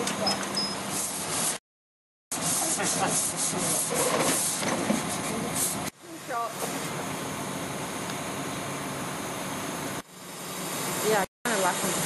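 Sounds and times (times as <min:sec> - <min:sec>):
diesel crane engine running: 0:04.8 - 0:12.0.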